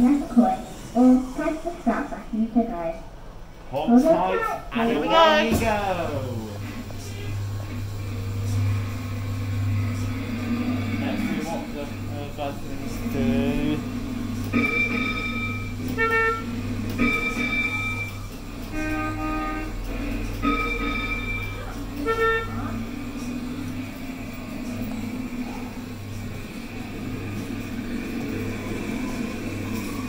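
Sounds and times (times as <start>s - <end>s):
low hum of ride running: 0.0s - 30.0s
kiddie ride electronic horn toots: 14.5s - 23.6s.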